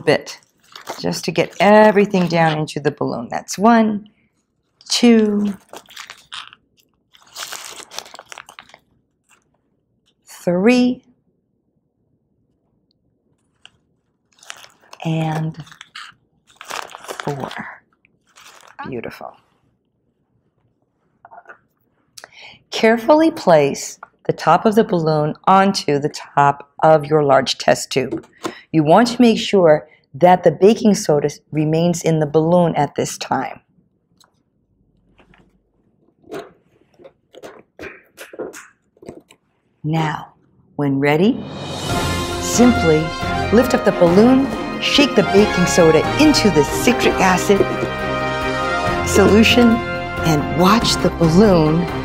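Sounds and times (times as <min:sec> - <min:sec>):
foil packet crinkling: 0:00.2 - 0:02.6, 0:04.8 - 0:10.2, 0:13.4 - 0:19.0
rubber balloon rubbing: 0:35.2 - 0:39.7
plastic spoon scooping powder: 0:36.1 - 0:39.4.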